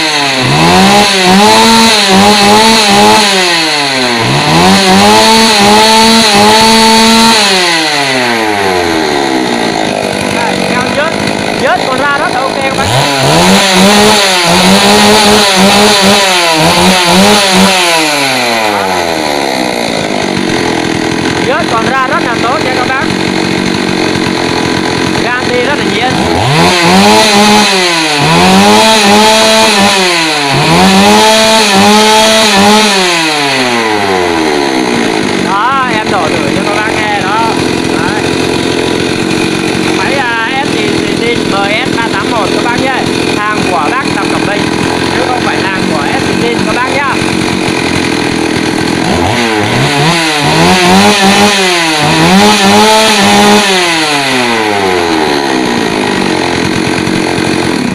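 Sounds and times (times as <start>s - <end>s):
chainsaw engine revving and idling: 0.0s - 57.9s.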